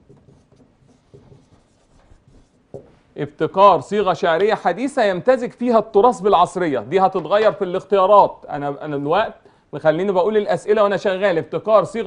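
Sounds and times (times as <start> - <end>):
marker writing on whiteboard: 0.0 - 3.1.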